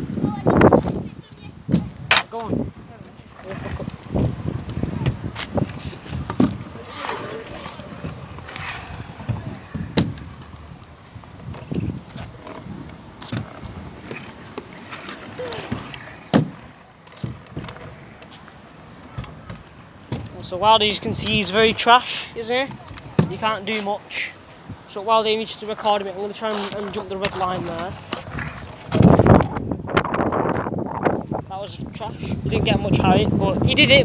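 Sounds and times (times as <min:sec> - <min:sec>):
faint voices: 0:04.7 - 0:10.0.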